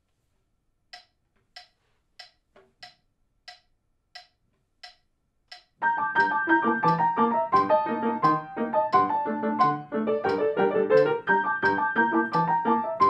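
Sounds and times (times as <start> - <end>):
metronome clicking: 0.9 - 13.0
grand piano chords: 5.8 - 13.0.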